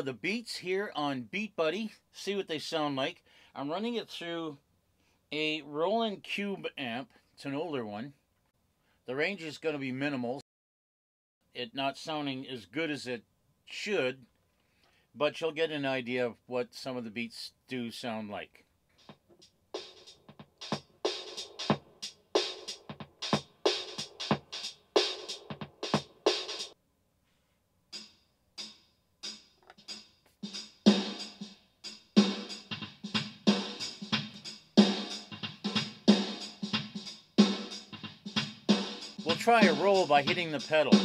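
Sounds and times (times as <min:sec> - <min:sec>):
drum machine beat through amp: 0:19.0 - 0:26.8, 0:28.0 - 0:41.0.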